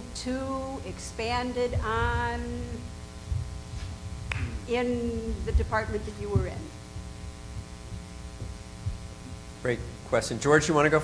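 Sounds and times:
faint low thumps: 0.0s - 10.1s
electrical mains hum: 0.0s - 11.0s.

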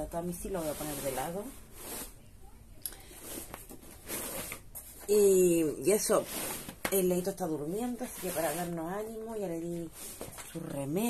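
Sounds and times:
exercise mat handling noises: 0.4s - 2.2s, 3.1s - 10.6s
soft scuffs: 0.4s - 2.2s.

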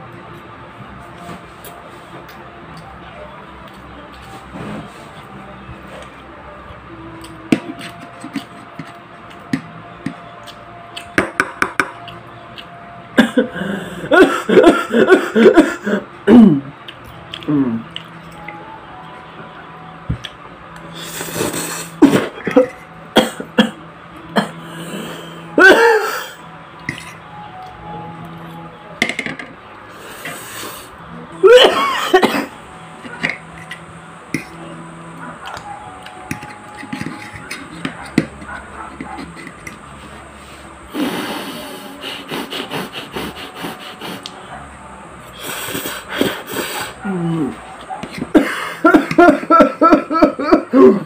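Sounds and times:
rhythmic chewing: 3.6s - 11.2s, 11.8s - 12.8s, 16.4s - 19.4s, 32.5s - 49.4s
person slurping noodles: 20.9s - 22.2s, 40.9s - 44.1s
person coughing: 22.0s - 23.8s, 25.6s - 26.4s, 31.4s - 32.5s, 48.3s - 51.0s.

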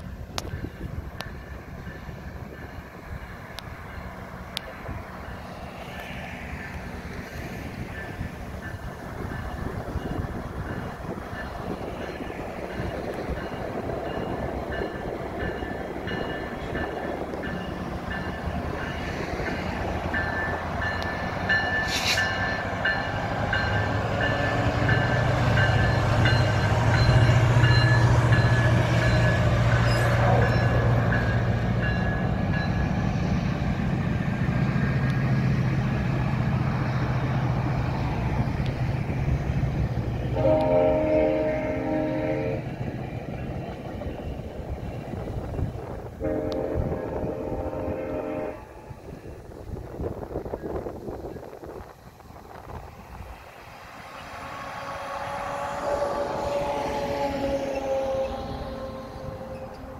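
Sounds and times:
locomotive engine drone: 0.0s - 59.9s
train horn blasts: 40.3s - 42.7s, 46.2s - 49.0s, 54.3s - 59.9s.

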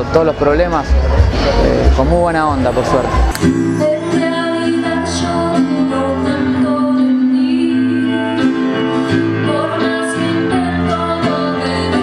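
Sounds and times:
bass guitar: 0.0s - 12.0s
drums: 0.0s - 12.0s
keyboard: 0.0s - 12.0s
electric guitar: 2.9s - 12.0s
woman singing into a microphone: 3.4s - 12.0s.

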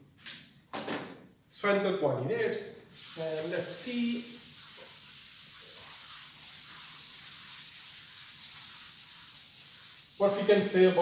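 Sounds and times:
chalkboard eraser scrubbing blackboard: 3.0s - 11.0s.

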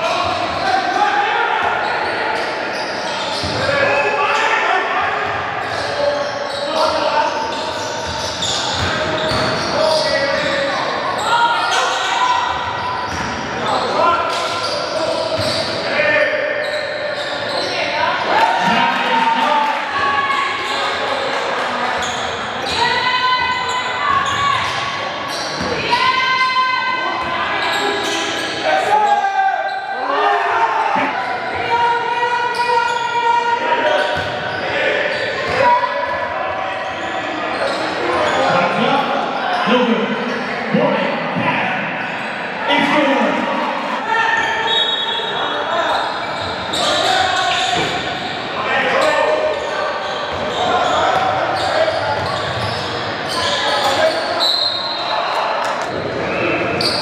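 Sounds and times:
players calling out: 0.0s - 57.0s
sneaker squeaks: 1.7s - 3.9s, 5.2s - 15.9s, 16.5s - 18.8s, 20.2s - 40.6s, 41.9s - 43.2s, 44.1s - 57.0s
basketball bouncing on court: 8.0s - 9.7s.

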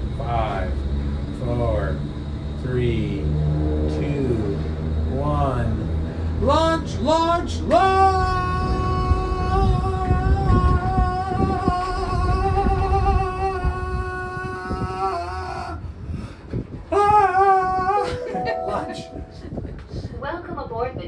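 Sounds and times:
low rumble of gondola cabin: 0.0s - 3.6s, 4.2s - 21.0s.

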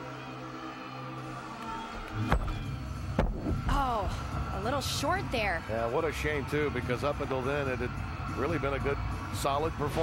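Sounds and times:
background music: 0.0s - 10.0s
crowd noise: 0.0s - 10.0s.

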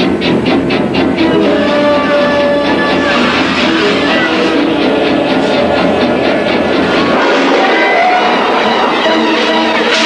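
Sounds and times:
faint music: 0.0s - 10.0s
gas flame roaring: 0.0s - 10.0s.

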